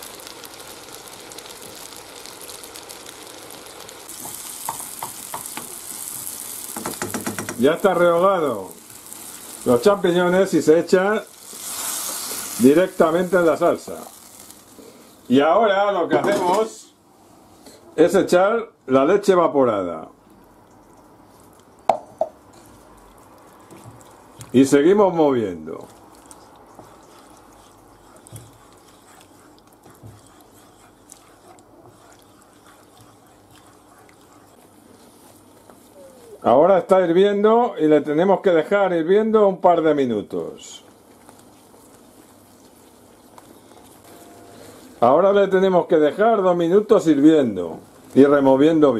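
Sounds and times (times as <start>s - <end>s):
sauce boiling in a frying pan: 0.0s - 15.4s, 21.1s - 37.2s, 37.9s - 48.9s
wooden spoon stirring sauce: 0.2s - 14.8s, 21.4s - 36.4s, 40.8s - 44.9s.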